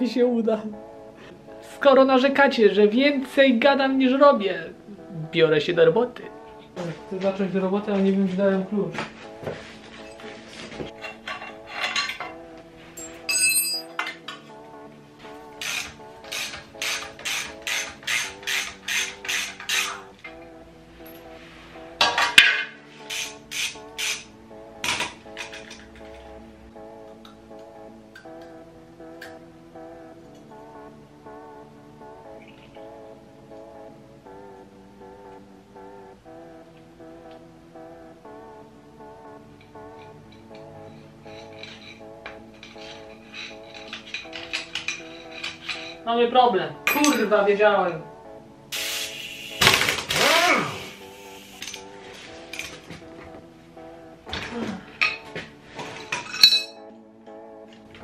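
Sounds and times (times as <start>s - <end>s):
background music: 0.0s - 58.0s
metal tools clinking: 10.9s - 14.6s, 40.0s - 46.0s, 46.9s - 47.3s, 56.0s - 56.9s
ratchet wrench clicking: 15.6s - 20.0s, 23.1s - 24.2s.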